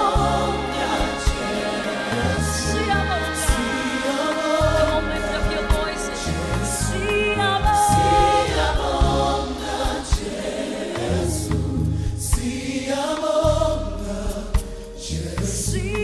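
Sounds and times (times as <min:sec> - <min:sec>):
gospel choir singing: 0:00.0 - 0:16.0
low bass notes: 0:00.0 - 0:16.0.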